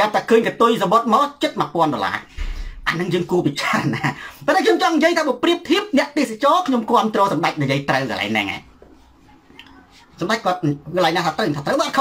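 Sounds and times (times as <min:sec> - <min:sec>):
man speaking: 0:00.0 - 0:08.7, 0:10.2 - 0:12.0.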